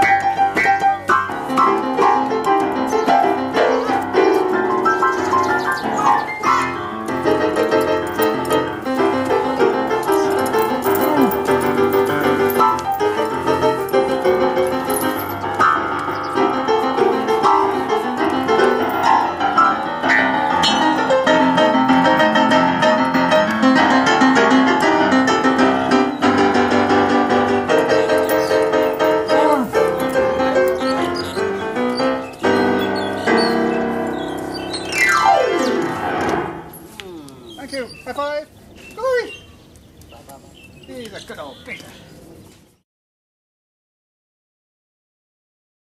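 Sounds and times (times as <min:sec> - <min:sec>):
blues piano playing: 0:00.0 - 0:37.0.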